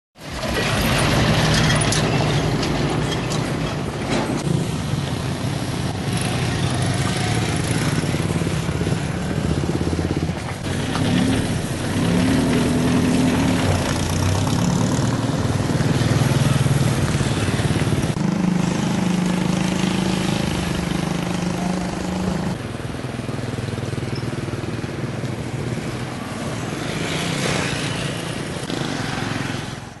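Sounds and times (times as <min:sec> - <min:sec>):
motorcycle engines passing: 0:00.2 - 0:30.0.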